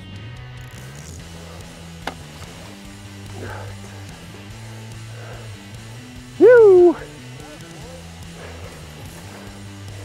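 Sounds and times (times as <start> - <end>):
guitar music with bass: 0.0 - 10.0.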